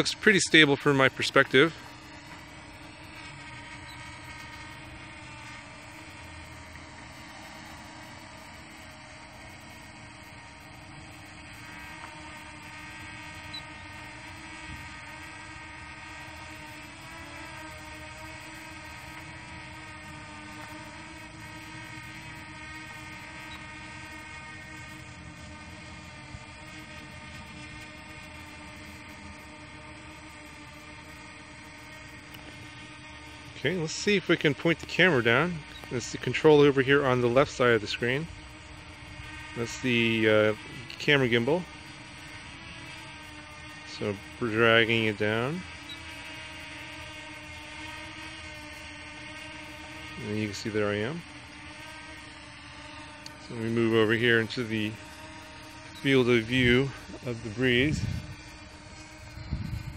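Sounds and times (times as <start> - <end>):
drone propellers whining: 0.0 - 59.9.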